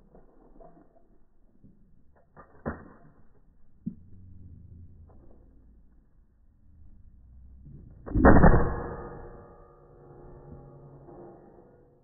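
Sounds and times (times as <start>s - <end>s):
rifle shot: 8.1s - 9.5s
steel target ringing: 8.1s - 11.9s.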